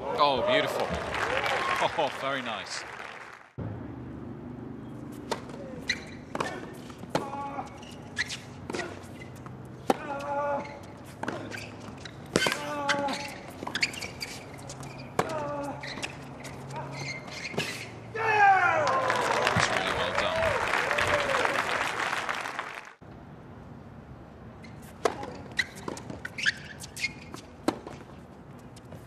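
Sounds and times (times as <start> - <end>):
tennis racquets hitting ball: 5.0 - 17.9, 24.9 - 28.1.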